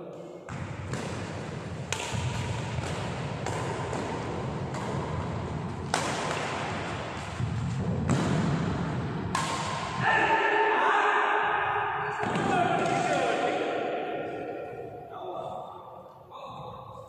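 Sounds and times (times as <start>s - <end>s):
rackets hitting shuttlecock: 0.5s - 10.0s, 12.2s - 15.0s.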